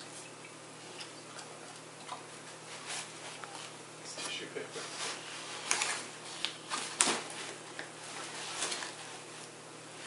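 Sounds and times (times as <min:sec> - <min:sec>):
paper crackles: 0:04.8 - 0:09.5.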